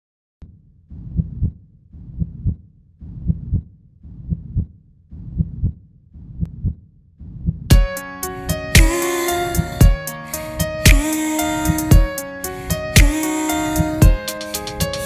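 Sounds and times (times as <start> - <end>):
heartbeat thumps: 0.9 - 7.9, 8.8 - 9.0, 9.6 - 10.0, 10.9 - 11.1, 11.7 - 12.2, 13.0 - 13.2, 13.9 - 14.2
pop song instruments: 7.7 - 15.0.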